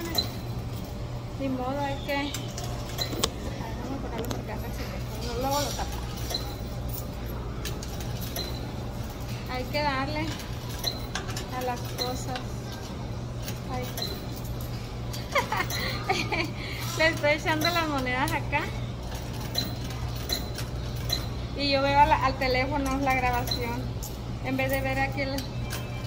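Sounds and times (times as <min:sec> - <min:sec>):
washing machines humming: 0:00.0 - 0:26.0.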